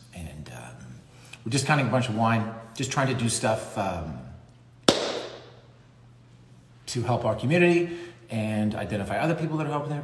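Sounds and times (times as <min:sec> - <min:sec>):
sharp knock: 0:04.9 - 0:05.6.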